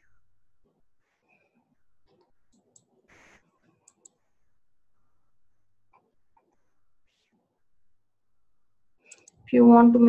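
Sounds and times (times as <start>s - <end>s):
computer mouse clicks: 2.1s - 3.0s, 3.8s - 4.2s, 9.0s - 9.5s.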